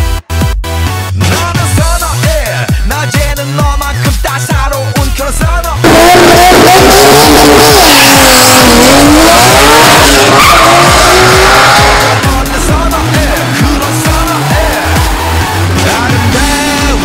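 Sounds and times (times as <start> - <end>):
music with steady beat: 0.0 - 17.0
drag racing car launching: 5.8 - 16.3.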